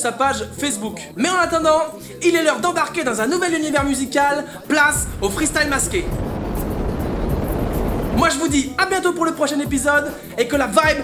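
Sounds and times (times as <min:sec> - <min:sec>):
rocket launch rumbling: 0:04.7 - 0:08.6.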